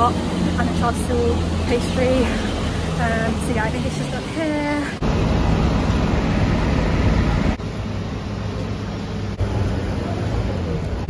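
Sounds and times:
traffic rushing: 0.0s - 11.0s.

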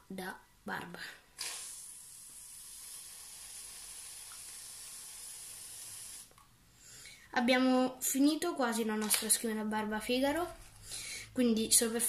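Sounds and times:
aerosol can spraying hiss: 1.4s - 6.3s.

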